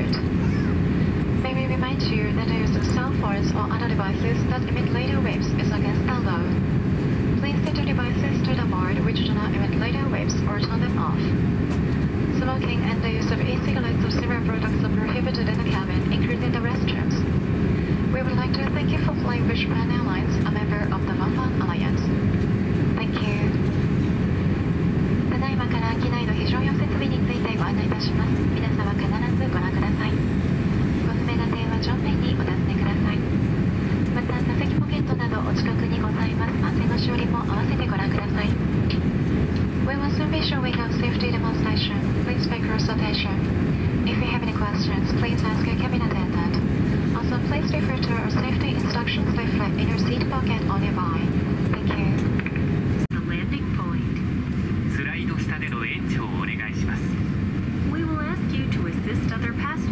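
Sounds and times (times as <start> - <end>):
aircraft cabin low hum: 0.0 - 59.9.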